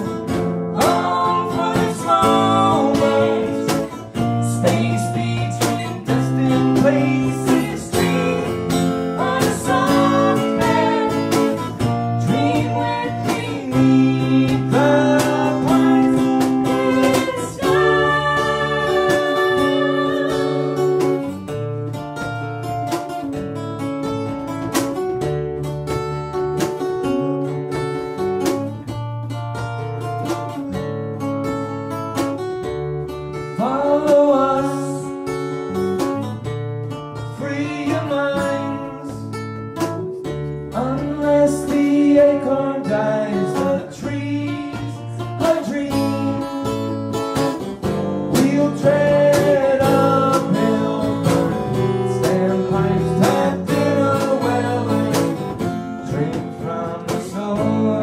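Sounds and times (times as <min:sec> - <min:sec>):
electric bass line: 0:00.0 - 0:30.2
acoustic guitar strumming: 0:00.0 - 0:58.0
woman singing into a microphone: 0:00.7 - 0:04.0, 0:04.6 - 0:21.2.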